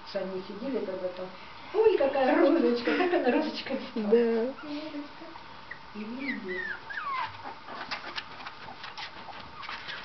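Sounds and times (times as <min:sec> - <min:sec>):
puppy whimpering: 0:05.7 - 0:10.0.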